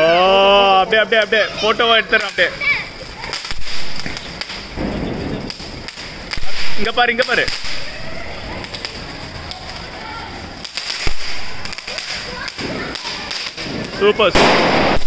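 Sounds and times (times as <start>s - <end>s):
firework crackling pops: 0.0s - 15.0s
firework hissing: 0.0s - 15.0s
loud burst: 3.3s - 8.9s, 10.6s - 15.0s.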